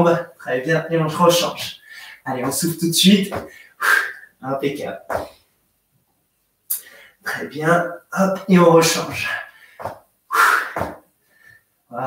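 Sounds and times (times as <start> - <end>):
man breathing out forcefully: 3.4 - 4.4, 9.6 - 11.5.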